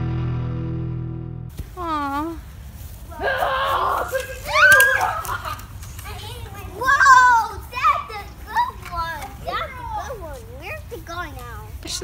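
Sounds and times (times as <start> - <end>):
young children shrieking and calling: 3.1 - 5.7.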